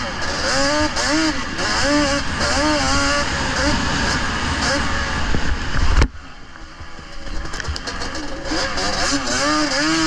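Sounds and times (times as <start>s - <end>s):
wind rumble on camera: 0.0s - 8.6s
rc car motor whine: 7.0s - 10.0s.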